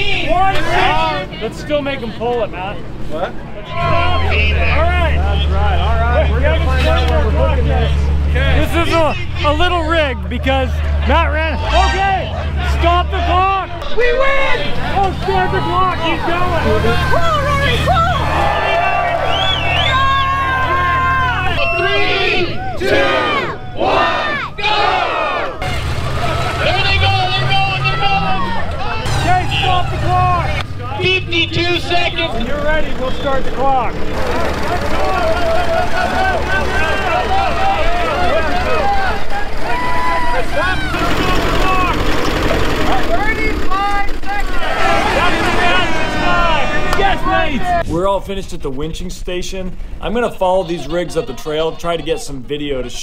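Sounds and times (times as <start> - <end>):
crowd shouting and cheering: 0.0 - 48.8, 49.4 - 53.0
vehicle engine running and revving: 3.8 - 13.6, 14.6 - 21.5, 25.6 - 47.0.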